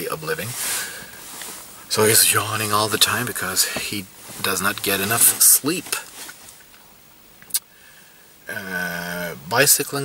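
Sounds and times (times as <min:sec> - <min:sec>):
car cabin background noise: 0:00.0 - 0:10.0.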